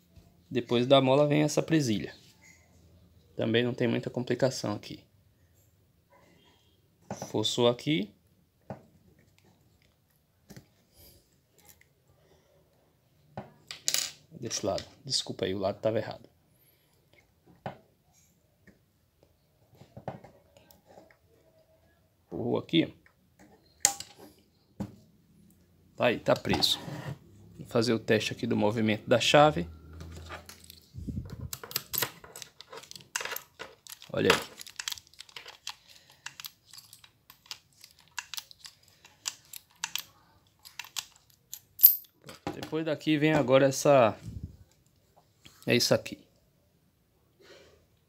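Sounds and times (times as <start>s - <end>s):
key turning in lock: 30.5s - 42.0s.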